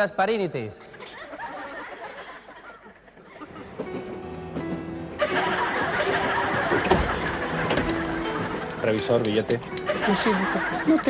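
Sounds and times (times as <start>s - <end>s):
train carriage running noise: 3.3s - 10.2s.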